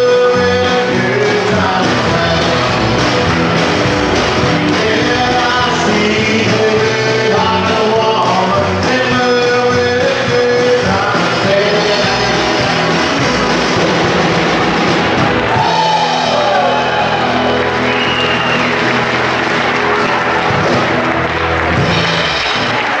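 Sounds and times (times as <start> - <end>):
live country band playing: 0.0 - 23.0.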